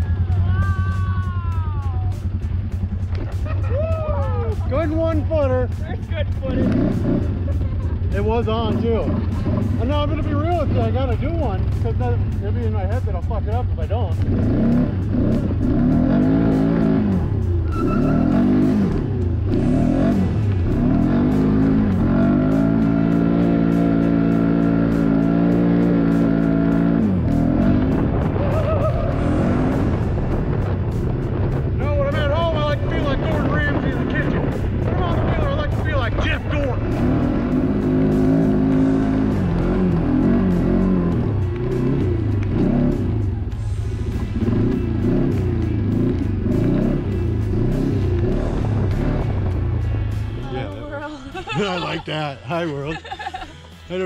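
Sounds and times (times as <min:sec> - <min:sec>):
atv engine revving: 0:00.0 - 0:54.0
music with voice: 0:31.6 - 0:54.0.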